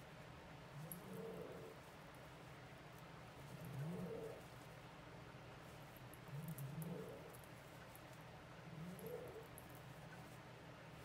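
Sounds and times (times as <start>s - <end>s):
low cooing bird call: 0.8s - 1.8s, 3.5s - 4.5s, 6.3s - 7.3s, 8.7s - 9.6s.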